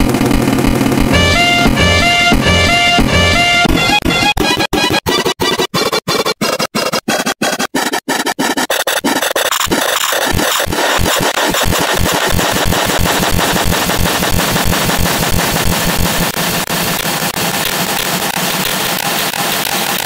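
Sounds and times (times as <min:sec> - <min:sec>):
deep pulse merging into low buzz: 0:00.0 - 0:03.7.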